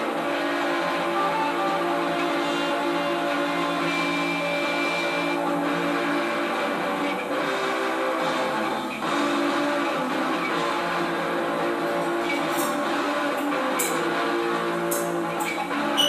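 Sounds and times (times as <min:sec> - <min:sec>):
drums: 0:00.0 - 0:16.0
sustained electric guitar chords: 0:00.0 - 0:16.0.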